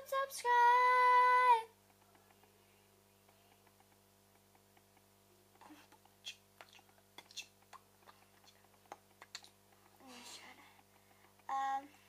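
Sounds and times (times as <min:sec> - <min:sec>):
faint clicks and taps: 0:01.6 - 0:12.0.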